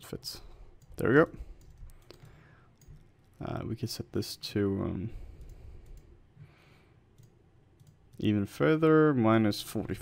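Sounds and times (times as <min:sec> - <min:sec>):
computer mouse clicks: 0:00.8 - 0:03.1, 0:05.3 - 0:06.1, 0:07.1 - 0:08.3.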